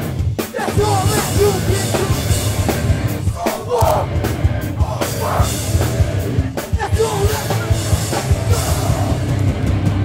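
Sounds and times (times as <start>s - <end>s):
drum hits: 0.0s - 10.0s
hardcore punk band playing live: 0.0s - 10.0s
loud shouted vocal: 0.5s - 9.3s
crowd yelling along: 0.5s - 9.5s.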